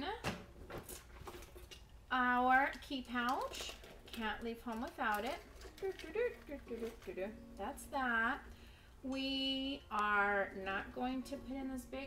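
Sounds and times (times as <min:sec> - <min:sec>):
small items rustling: 0:00.5 - 0:08.3.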